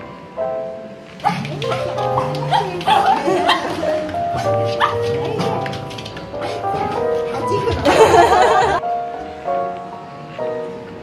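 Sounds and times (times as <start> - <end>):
background music: 0.0 - 11.0
dog yipping: 1.2 - 7.4.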